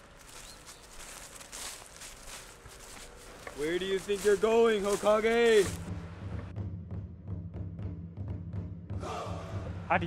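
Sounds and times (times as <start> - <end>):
boots crunching through dry leaves: 0.0 - 5.9.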